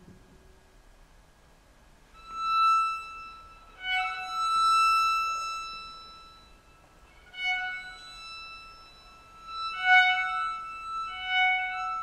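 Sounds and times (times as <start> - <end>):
violin sustained high notes: 2.2 - 12.0.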